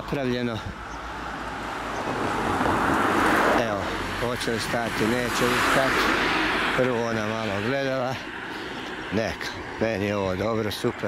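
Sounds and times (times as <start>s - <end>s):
car passing close by: 1.1s - 9.8s.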